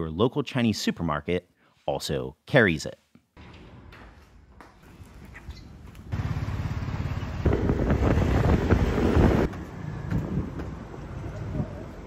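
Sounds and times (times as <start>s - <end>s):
street noise: 4.8s - 12.0s
motor vehicle passing: 5.8s - 12.0s.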